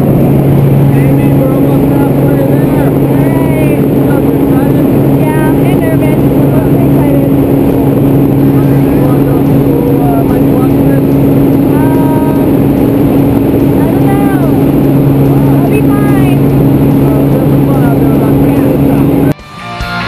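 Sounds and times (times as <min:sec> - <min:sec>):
propeller plane engine drone: 0:00.0 - 0:20.0
faint voices talking: 0:00.8 - 0:19.3.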